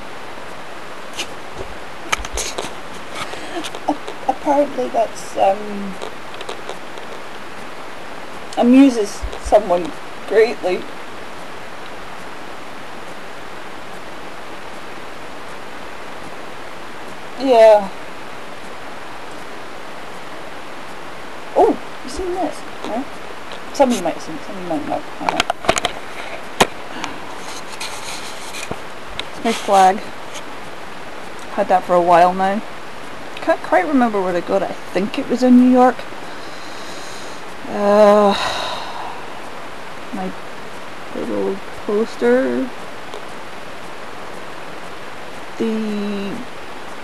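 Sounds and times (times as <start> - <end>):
background hiss: 0.0 - 47.0.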